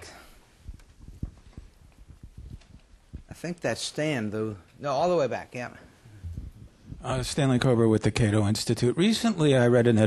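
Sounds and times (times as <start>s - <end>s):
soft low thumps and knocks: 0.7s - 3.3s, 6.2s - 7.2s.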